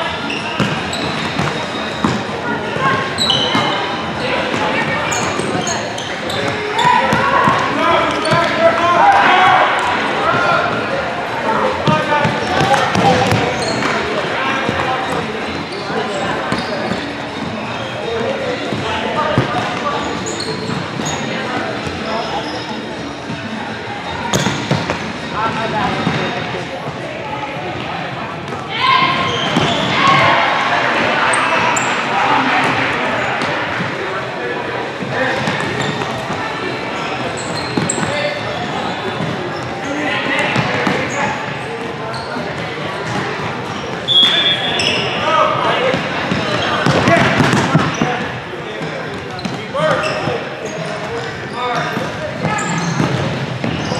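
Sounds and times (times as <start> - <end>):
sneakers squeaking: 0.0 - 27.0, 27.6 - 53.9.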